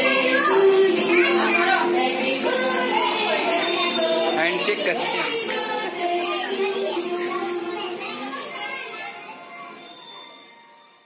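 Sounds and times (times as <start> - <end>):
background music: 0.0 - 11.0
children chattering: 0.0 - 11.0.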